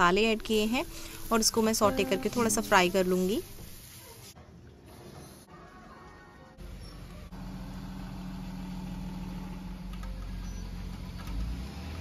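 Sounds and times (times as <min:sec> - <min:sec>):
truck engine idling: 0:06.6 - 0:11.4.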